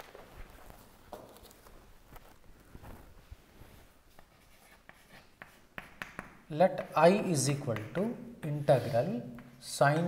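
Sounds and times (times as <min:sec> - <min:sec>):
chalk tapping on blackboard: 0:04.1 - 0:10.0.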